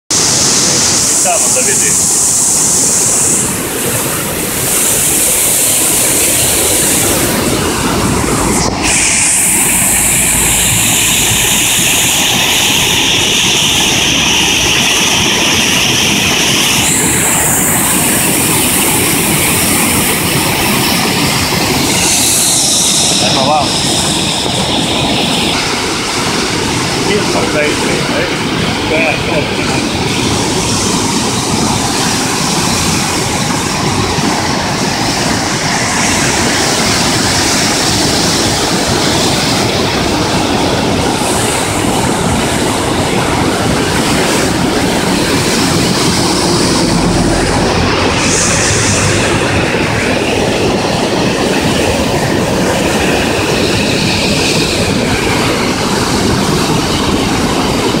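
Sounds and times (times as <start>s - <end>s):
river roaring: 0.1s - 58.0s.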